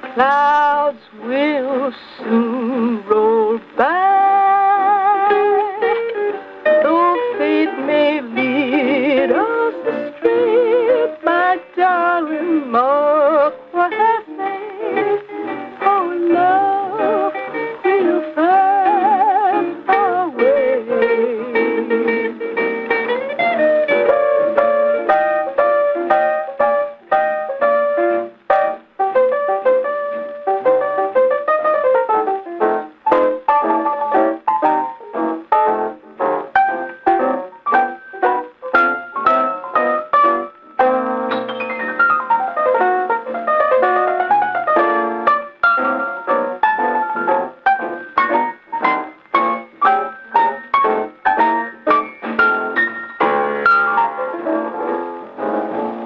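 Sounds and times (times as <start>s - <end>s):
phonograph record playing piano music: 0.0s - 56.0s.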